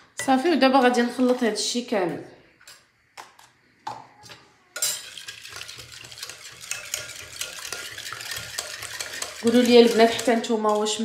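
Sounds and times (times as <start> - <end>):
whisk beating batter in pot: 4.8 - 11.0.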